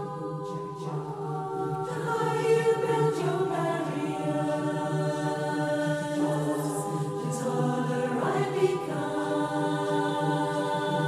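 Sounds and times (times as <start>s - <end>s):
choir singing held notes: 0.0s - 11.0s.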